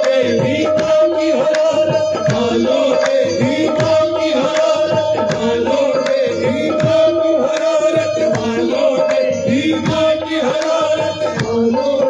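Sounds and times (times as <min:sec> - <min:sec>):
tabla strokes: 0:00.0 - 0:12.0.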